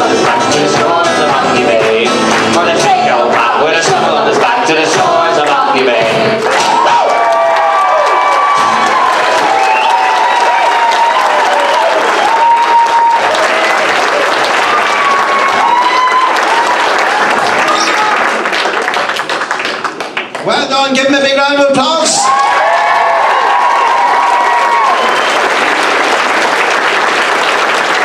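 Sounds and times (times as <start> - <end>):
audience applauding: 0.0 - 21.1, 22.2 - 28.0
shouts and whoops: 6.5 - 18.3, 22.0 - 25.7.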